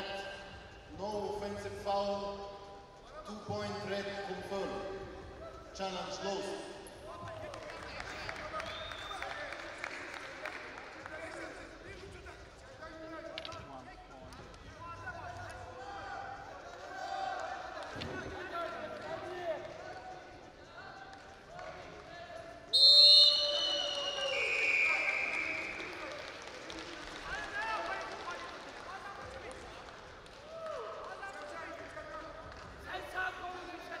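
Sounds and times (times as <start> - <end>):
referee's whistle blast: 22.7 - 25.9.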